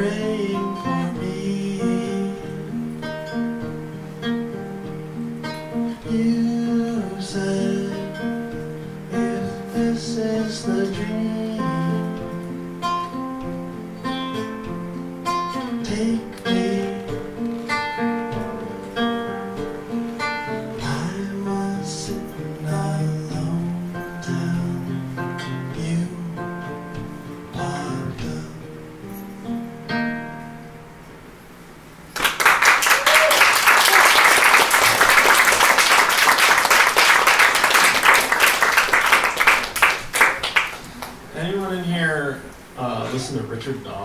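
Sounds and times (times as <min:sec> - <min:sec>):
acoustic guitar playing: 0:00.0 - 0:44.0.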